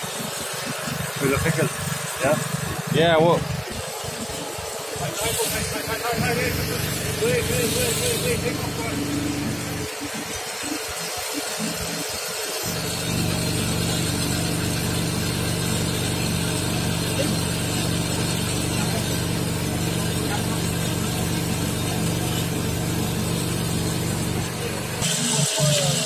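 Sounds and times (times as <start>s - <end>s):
machinery engine hum: 0.0s - 26.0s.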